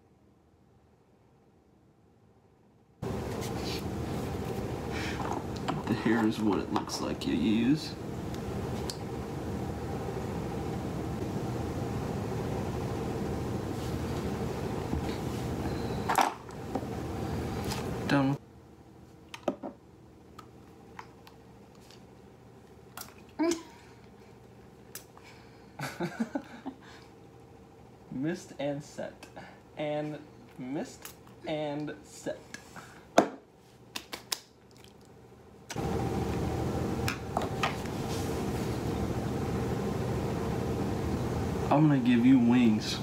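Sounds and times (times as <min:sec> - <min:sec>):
room noise with low hum: 0:00.0 - 0:43.0.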